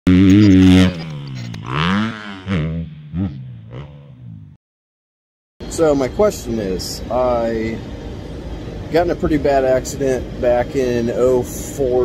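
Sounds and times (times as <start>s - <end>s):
dirt bike engine revving: 0.1s - 4.6s.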